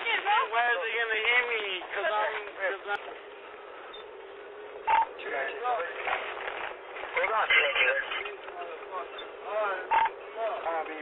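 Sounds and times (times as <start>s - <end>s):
car cabin road noise: 0.0s - 11.0s
short radio beep: 4.9s - 5.1s
radio voices: 7.0s - 10.9s.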